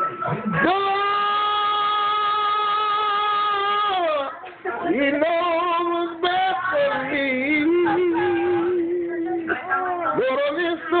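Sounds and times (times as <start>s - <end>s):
man singing long notes: 0.4s - 9.5s.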